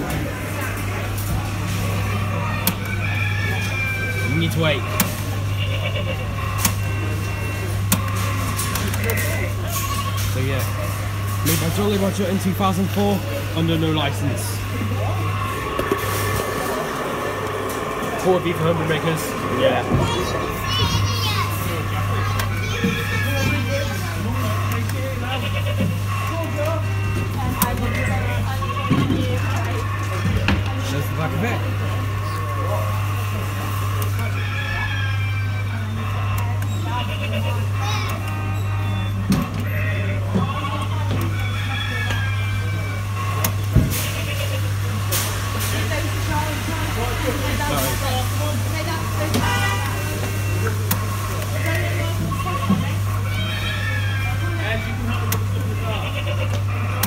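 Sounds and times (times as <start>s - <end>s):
background shop noise: 0.0s - 57.0s
low electrical hum: 0.0s - 57.0s
voices including children: 14.5s - 24.4s, 36.3s - 39.0s.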